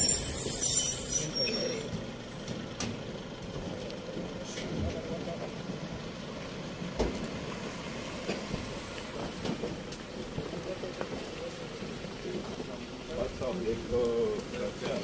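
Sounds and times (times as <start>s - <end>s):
car engine and tyre noise: 0.0s - 15.0s.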